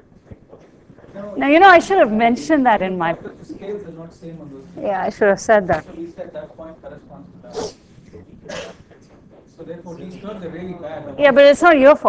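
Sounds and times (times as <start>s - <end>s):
quiet indistinct talk: 3.1s - 12.0s.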